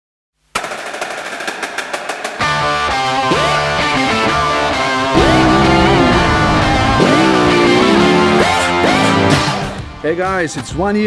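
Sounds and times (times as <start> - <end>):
rapid percussive drum hits: 0.6 - 2.7, 5.2 - 9.5.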